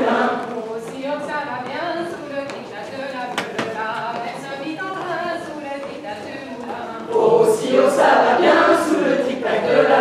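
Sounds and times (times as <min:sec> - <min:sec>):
group singing unaccompanied: 0:00.0 - 0:00.9, 0:06.7 - 0:10.0.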